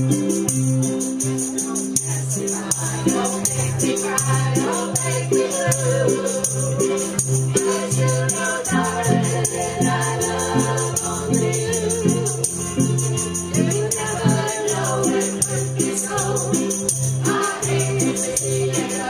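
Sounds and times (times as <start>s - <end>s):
string band playing: 0.0s - 19.0s
group singing together: 1.6s - 19.0s.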